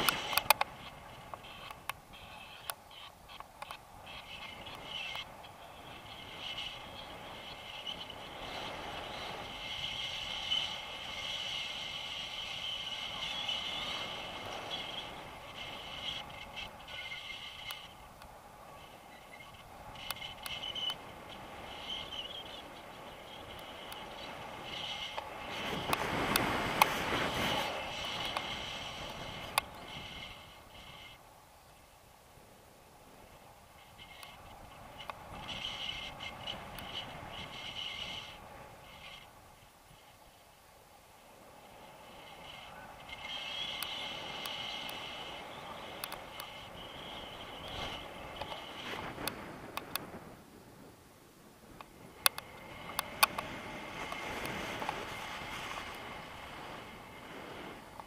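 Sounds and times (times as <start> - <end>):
small clicks and scrapes: 0.0 - 5.3, 6.0 - 31.2, 33.8 - 39.3, 42.1 - 50.3, 51.8 - 58.0
wind rushing over microphone: 0.0 - 31.2, 32.3 - 40.3, 41.1 - 58.0.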